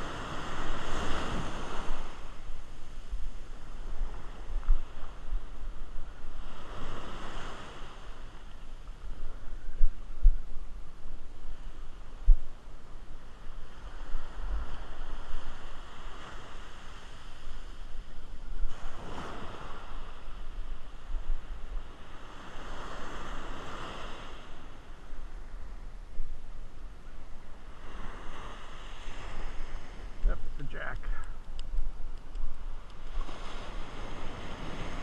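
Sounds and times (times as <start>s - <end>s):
wind buffeting microphone: 0.0s - 30.7s, 31.3s - 35.0s
ocean surf washing up beach: 0.0s - 35.0s.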